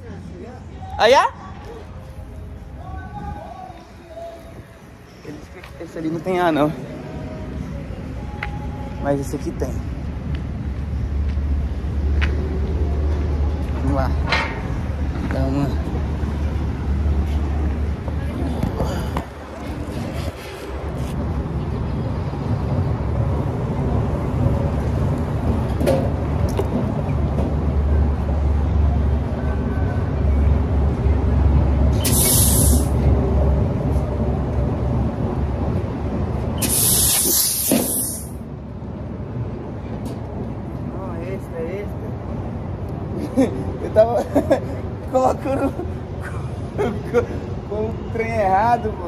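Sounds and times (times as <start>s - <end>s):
air hose hissing: 31.9s - 33.0s, 36.6s - 38.4s.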